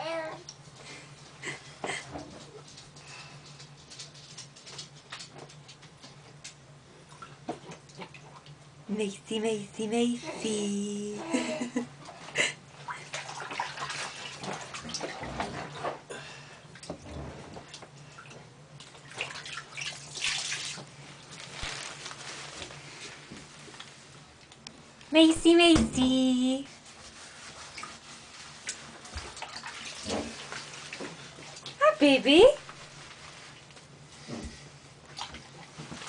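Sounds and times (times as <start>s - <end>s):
bath water splashing: 12.0s - 16.1s, 16.7s - 22.6s, 26.8s - 31.8s, 35.0s - 36.0s
washcloth rubbing: 25.5s - 34.8s.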